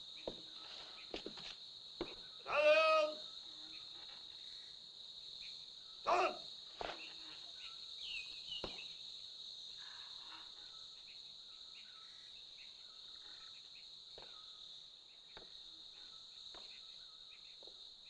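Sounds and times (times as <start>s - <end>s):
insect chirps: 0.0s - 18.0s
high-pitched insect drone: 2.0s - 4.8s.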